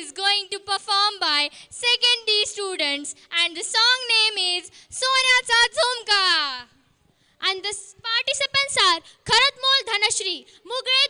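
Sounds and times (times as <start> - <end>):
child's high-pitched voice: 0.0 - 6.7, 7.4 - 11.0.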